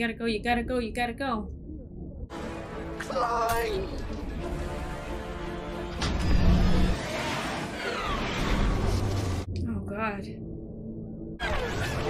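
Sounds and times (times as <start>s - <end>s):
soundtrack score: 0.0s - 12.0s
rushing roar of spacecraft effects: 6.2s - 9.4s.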